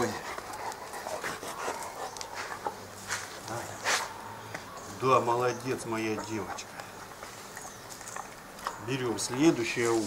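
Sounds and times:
dog sniffing and breathing: 0:00.0 - 0:04.2.

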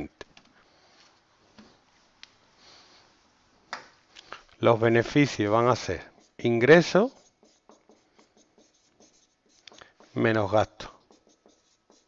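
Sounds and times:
marker pen on whiteboard: 0:04.8 - 0:12.0.

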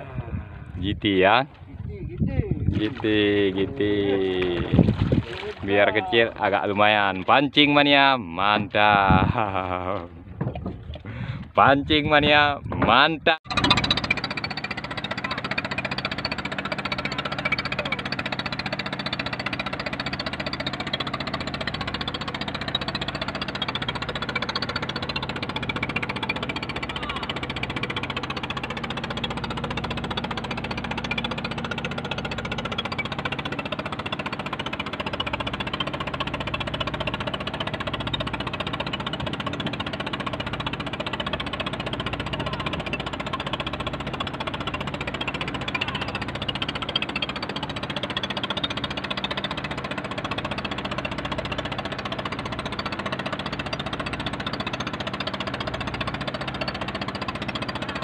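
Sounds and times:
boat engine droning: 0:00.0 - 0:12.3, 0:13.5 - 0:58.0.

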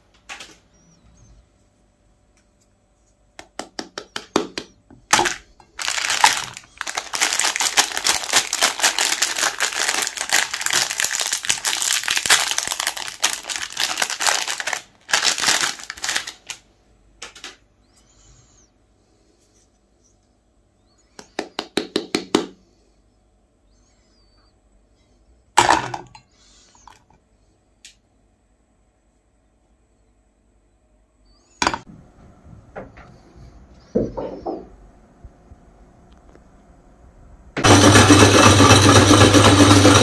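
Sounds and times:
wrapper crinkling: 0:05.1 - 0:17.5.

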